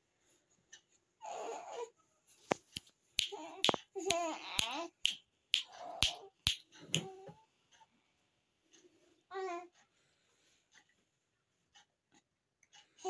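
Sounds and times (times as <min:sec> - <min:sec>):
baby cooing and babbling: 0:01.2 - 0:01.9, 0:03.2 - 0:05.0, 0:05.7 - 0:06.4.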